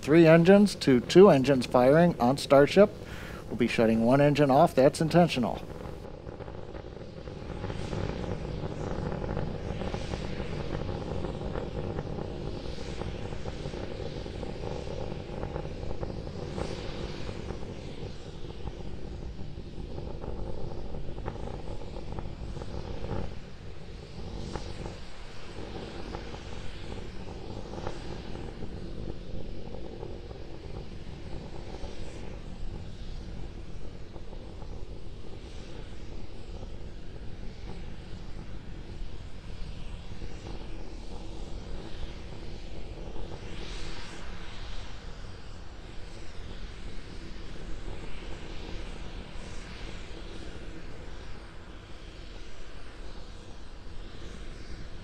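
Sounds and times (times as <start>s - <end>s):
rocket engines rumbling: 0.0s - 44.4s.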